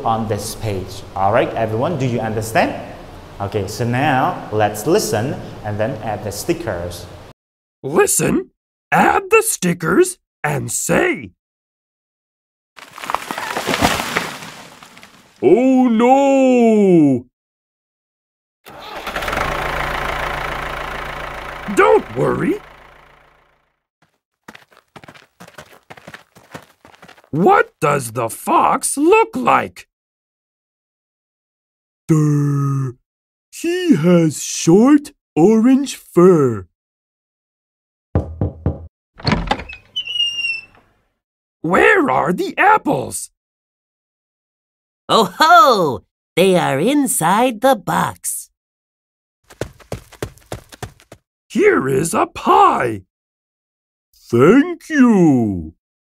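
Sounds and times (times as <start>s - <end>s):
tree crashing: 12.8s - 15.4s
wood cracking and splintering: 12.8s - 15.4s
knocking on door: 38.2s - 39.7s.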